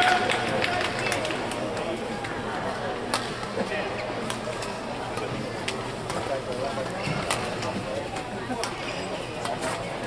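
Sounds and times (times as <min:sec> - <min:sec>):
crowd applause: 0:00.0 - 0:01.6
murmur of voices and chatter: 0:00.0 - 0:10.0.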